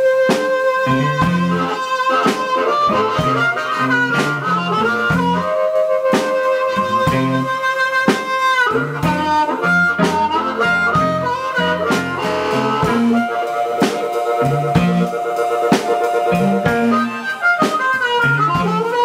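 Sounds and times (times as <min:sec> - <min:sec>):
blues harmonica solo: 0:00.0 - 0:19.0
drum kit: 0:00.0 - 0:19.0
electric guitar: 0:00.0 - 0:19.0.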